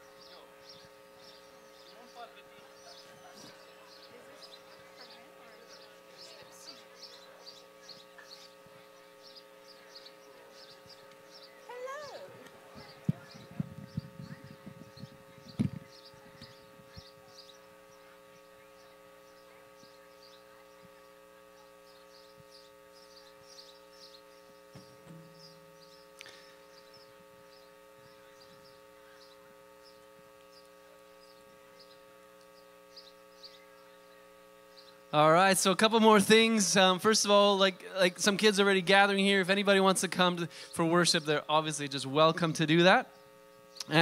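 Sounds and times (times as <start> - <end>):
electrical hum: 0.0 - 44.0.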